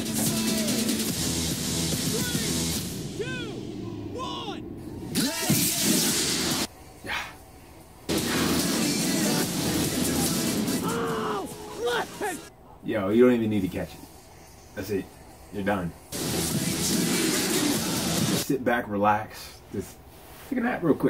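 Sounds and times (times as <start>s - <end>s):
people shouting excitedly: 2.0s - 4.7s, 10.6s - 12.5s
voices: 2.0s - 6.1s, 9.1s - 14.0s.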